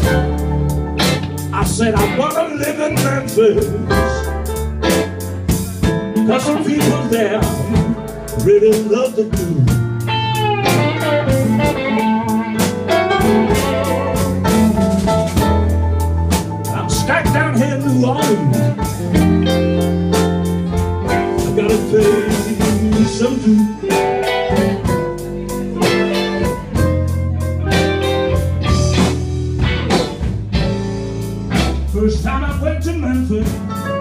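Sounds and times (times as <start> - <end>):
electric guitars: 0.0 - 34.0
low bass notes: 0.0 - 34.0
steady drum beat: 0.0 - 34.0.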